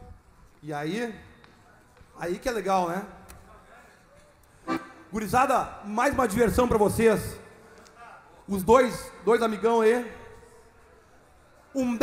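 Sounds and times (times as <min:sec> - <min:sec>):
faint accordion notes: 0:04.6 - 0:05.2.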